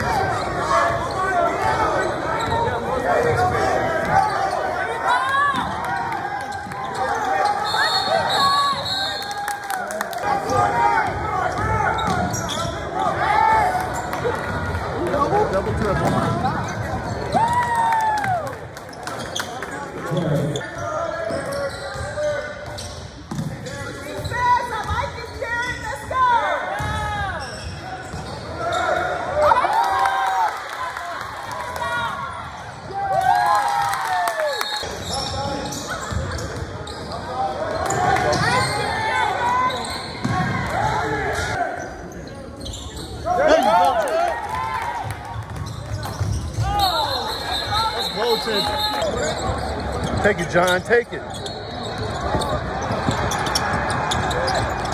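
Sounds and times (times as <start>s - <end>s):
spectators' voices: 0.0s - 33.6s, 34.2s - 54.9s
sneakers squeaking on court: 2.0s - 4.8s, 11.4s - 13.0s, 18.9s - 25.8s, 26.8s - 29.1s, 34.8s - 40.5s, 41.8s - 43.3s, 45.5s - 54.9s.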